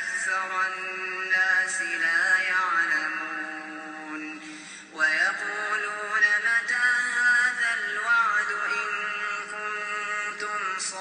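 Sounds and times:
man chanting melodic recitation: 0.0s - 11.0s.

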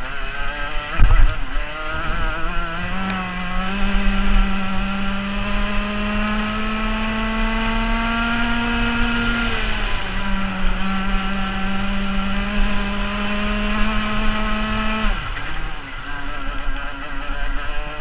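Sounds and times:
kart engine at full throttle: 0.0s - 18.0s.

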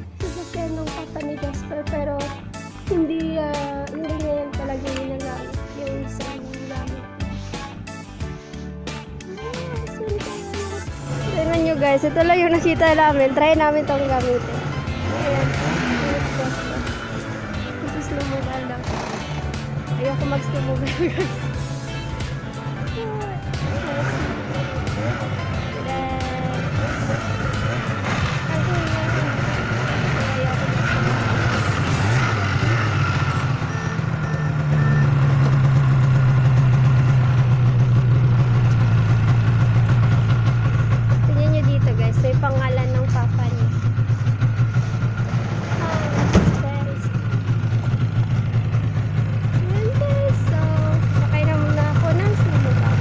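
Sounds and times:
snowmobile engine running: 9.4s - 53.0s.

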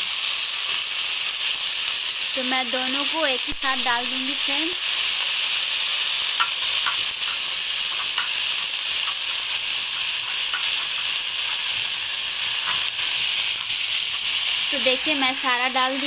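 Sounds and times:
vegetables sizzling in hot oil: 0.0s - 16.0s
small oil pops: 6.3s - 8.4s, 10.2s - 11.6s.

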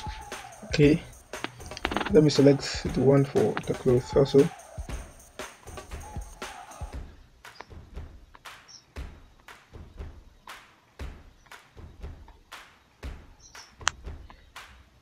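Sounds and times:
low thumps: 0.0s - 5.2s.

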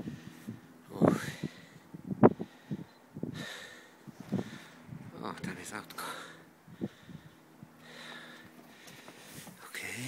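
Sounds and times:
person breathing hard: 0.0s - 4.9s, 6.0s - 9.6s.

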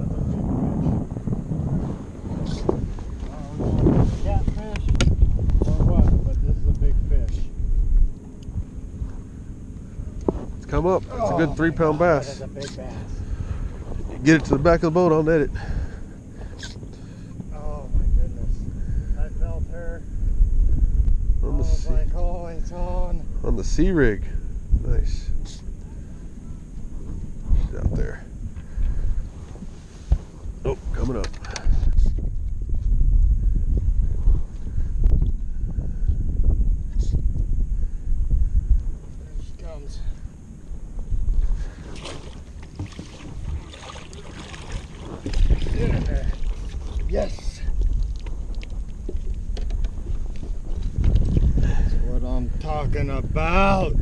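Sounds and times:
wind buffeting microphone: 0.0s - 54.0s
water splashes: 41.6s - 49.5s
knocks on boat: 42.0s - 43.8s.

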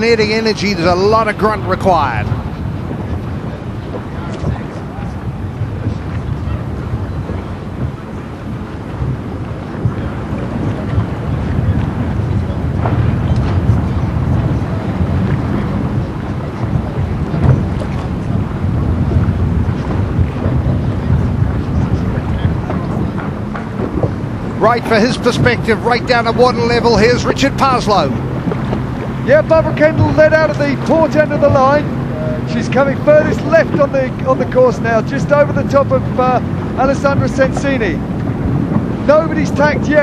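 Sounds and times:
steady low rumble: 0.0s - 40.0s
wind buffeting microphone: 0.0s - 40.0s.

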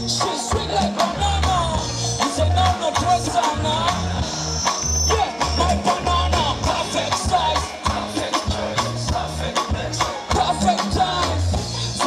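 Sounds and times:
man singing into microphone: 0.0s - 4.4s, 5.0s - 12.0s
live band with bass beat: 0.0s - 12.0s.

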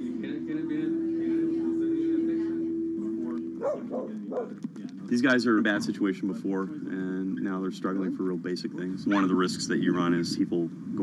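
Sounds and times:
steady low tone: 0.0s - 9.1s
dog yipping: 3.6s - 4.5s, 9.1s - 9.4s.

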